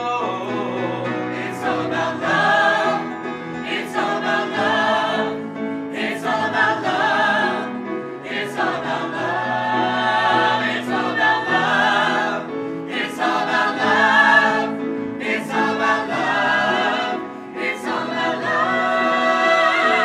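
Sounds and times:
choir singing a ballad: 0.0 - 20.0
piano accompaniment: 0.0 - 20.0.

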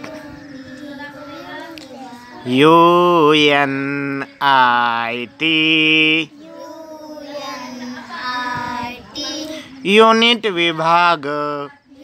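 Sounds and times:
children chanting a rhyme: 0.0 - 9.8.

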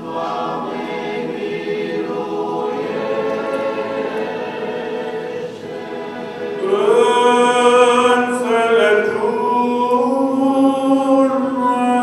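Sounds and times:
choir singing a cappella chant: 0.0 - 12.0.

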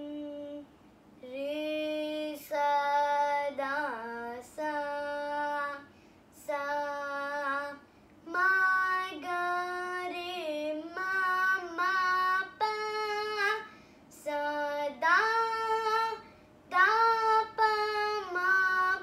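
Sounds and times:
girl singing unaccompanied: 0.0 - 19.0.

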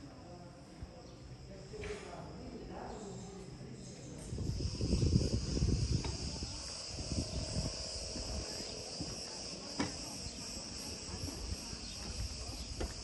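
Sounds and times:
cicadas buzzing: 0.0 - 13.0.

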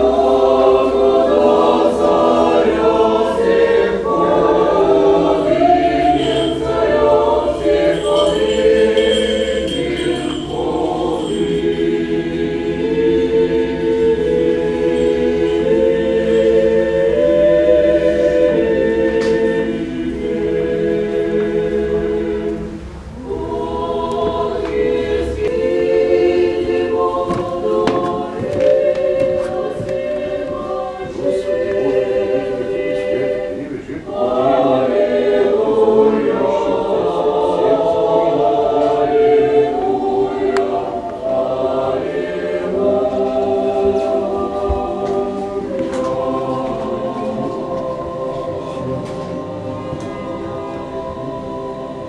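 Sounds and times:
choir singing a cappella: 0.0 - 52.0.

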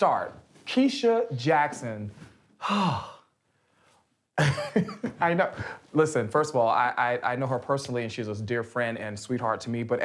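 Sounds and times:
person sighing: 2.6 - 3.4.

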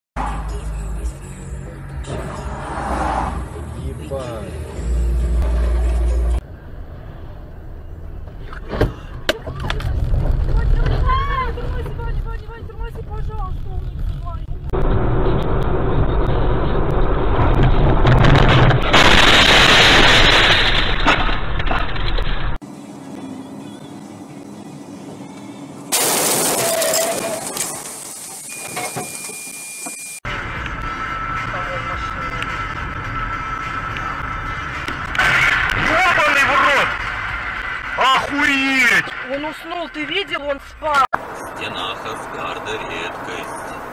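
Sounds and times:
car road and engine noise: 0.2 - 26.6, 27.2 - 43.9
voices: 9.3 - 14.5
loud rushing noise: 30.3 - 40.0.

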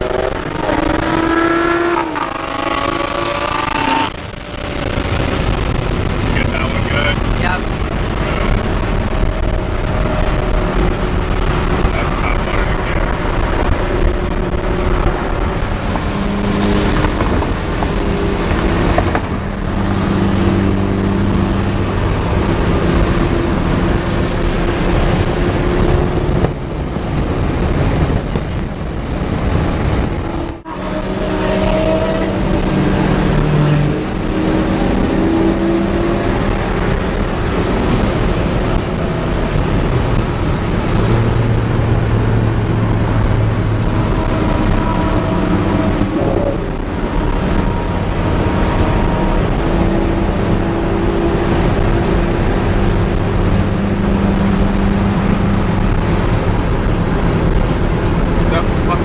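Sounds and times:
car engines accelerating: 0.0 - 59.0
road and wind noise in car: 0.0 - 59.0.

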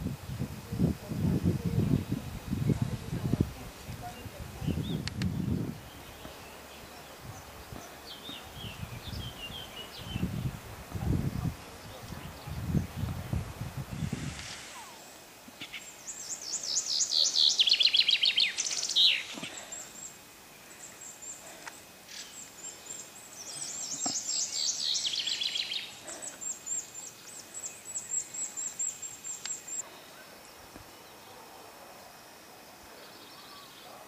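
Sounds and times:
songbird singing: 0.0 - 34.0.

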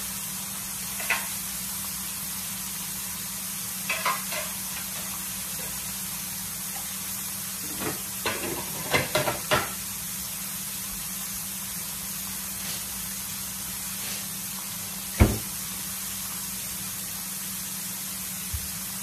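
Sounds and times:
fish frying in grease: 0.0 - 19.0.

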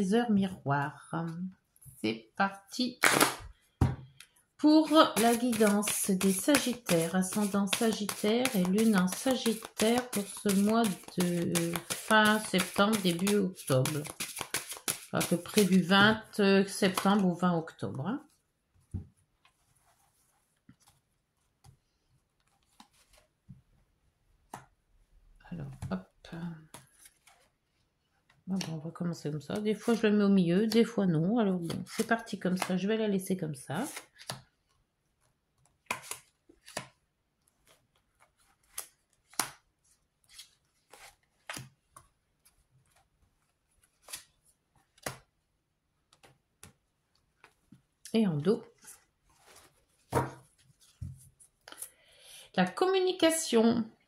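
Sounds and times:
cards tapping and sliding on cloth: 4.9 - 15.8.

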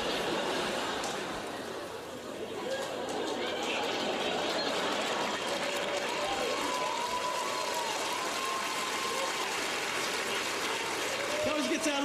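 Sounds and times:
audience laughing: 0.0 - 5.9.

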